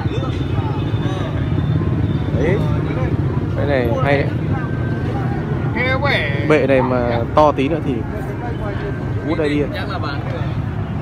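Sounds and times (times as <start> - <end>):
street noise rumble: 0.0 - 11.0
voices talking: 0.0 - 11.0.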